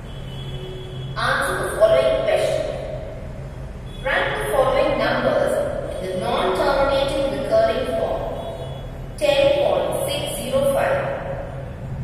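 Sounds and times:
person speaking: 0:01.2 - 0:03.0, 0:04.1 - 0:08.2.

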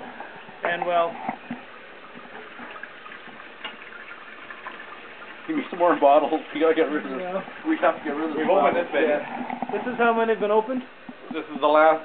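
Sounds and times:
liquid running into sink: 0:00.2 - 0:11.7.

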